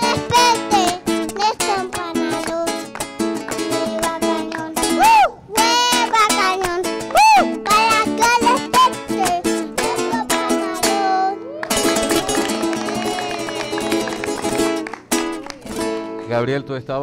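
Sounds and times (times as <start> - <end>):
acoustic guitar strumming: 0.0 - 16.8
hands clapping: 1.8 - 4.7, 11.6 - 16.1.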